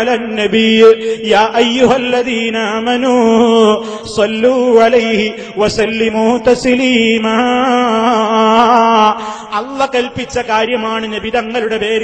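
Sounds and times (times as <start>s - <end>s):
man chanting over microphone: 0.0s - 12.0s.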